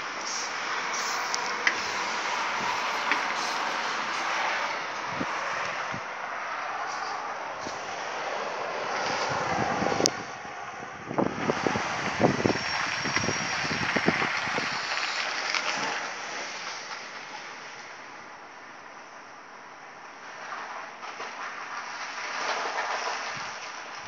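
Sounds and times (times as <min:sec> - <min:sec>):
road traffic hiss: 0:00.0 - 0:24.0.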